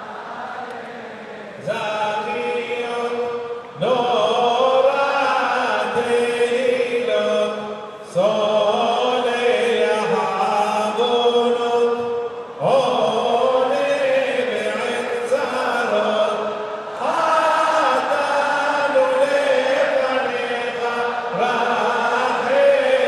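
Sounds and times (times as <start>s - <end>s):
voices chanting prayers: 0.0s - 23.0s.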